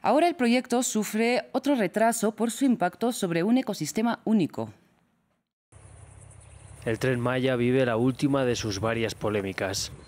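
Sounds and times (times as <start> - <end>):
insects chirring: 5.8 - 7.0.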